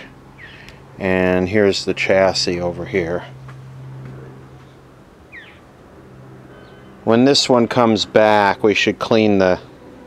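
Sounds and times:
small bird chirping: 0.4 - 0.8, 4.6 - 5.7, 6.5 - 7.0.

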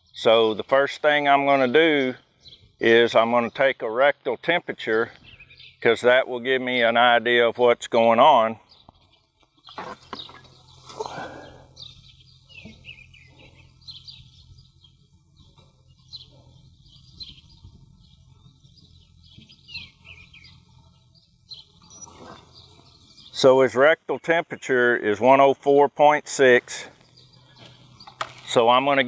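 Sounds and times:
small birds chirping: 0.0 - 29.0
low hum: 8.6 - 23.5.

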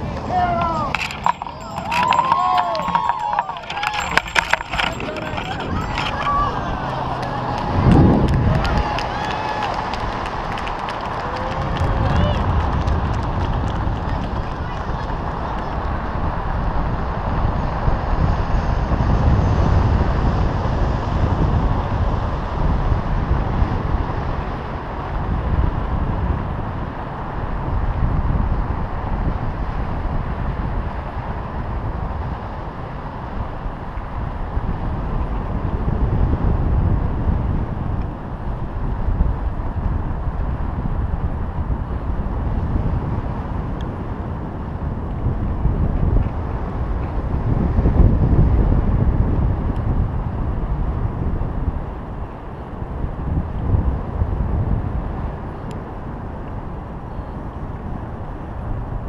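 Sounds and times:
wind rushing over microphone: 0.0 - 59.0.

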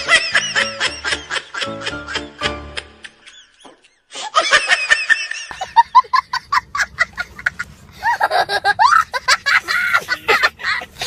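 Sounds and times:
loud laughter: 0.0 - 11.0.

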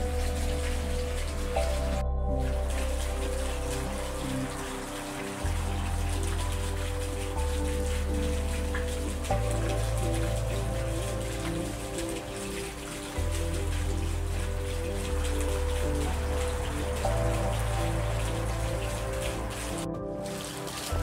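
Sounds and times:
calm background music: 0.0 - 21.0
rain-like patter: 0.0 - 21.0.

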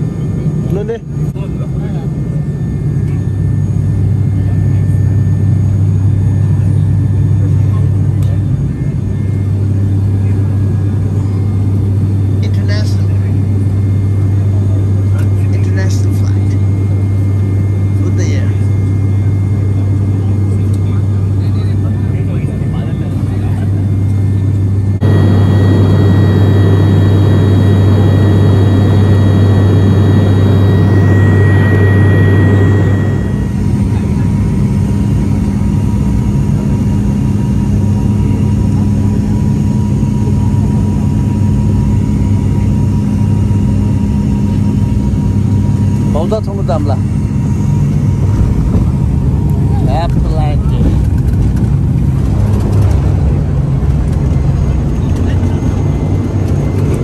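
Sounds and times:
airplane cabin propeller hum: 0.0 - 57.0
steady higher tone: 24.7 - 34.1.

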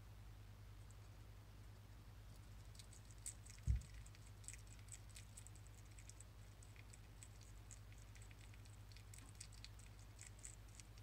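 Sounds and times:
hedgehog chewing clicks: 2.3 - 11.0
low thump: 3.6 - 3.9.

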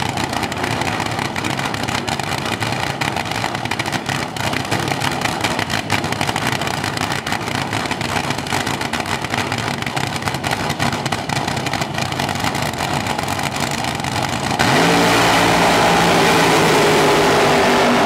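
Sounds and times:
dragster engine revving: 0.0 - 18.0.

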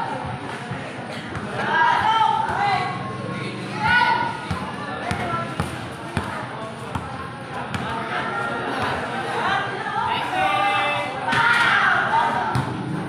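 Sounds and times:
voices of onlookers: 0.0 - 13.0
basketball bouncing on concrete: 3.9 - 8.0.

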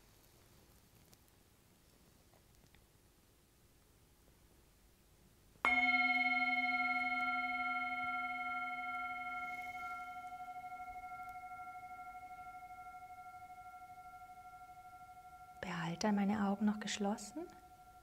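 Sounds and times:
singing bowl ringing: 5.7 - 18.0.

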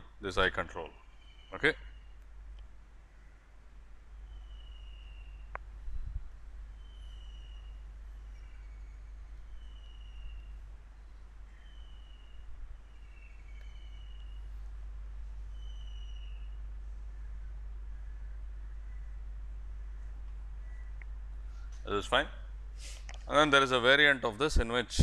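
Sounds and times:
faint low hum: 0.0 - 25.0
bird calling: 0.7 - 2.2, 3.1 - 5.6, 6.7 - 14.7, 15.5 - 23.0
click: 5.5 - 5.7.

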